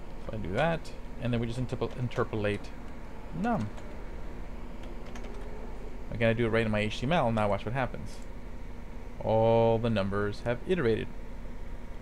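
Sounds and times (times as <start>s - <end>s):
computer keyboard typing: 3.4s - 4.0s, 4.8s - 5.5s.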